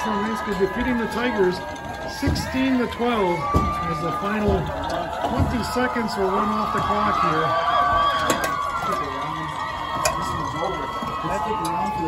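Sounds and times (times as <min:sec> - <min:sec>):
football crowd cheering: 0:00.0 - 0:12.0.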